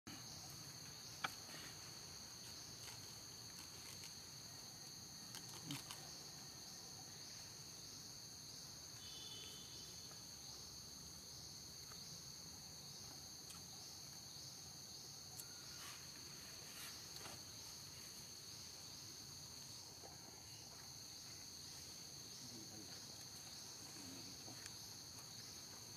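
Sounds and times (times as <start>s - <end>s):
high-pitched insect chorus: 0.1s - 25.9s.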